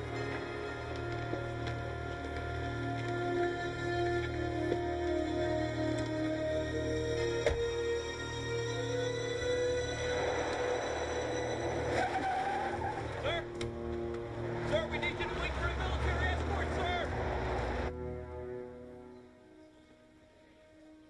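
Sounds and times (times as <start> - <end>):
car engine and tyre noise: 0.0 - 17.9
film score music: 0.0 - 21.0.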